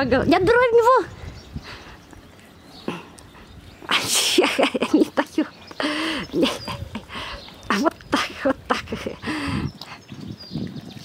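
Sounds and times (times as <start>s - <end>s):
tiger and lion cubs feeding: 1.3s - 11.0s.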